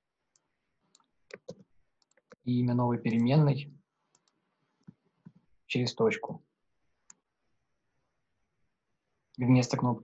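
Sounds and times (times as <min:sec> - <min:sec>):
computer mouse clicks: 0:00.3 - 0:02.4, 0:04.1 - 0:05.5, 0:07.0 - 0:07.3.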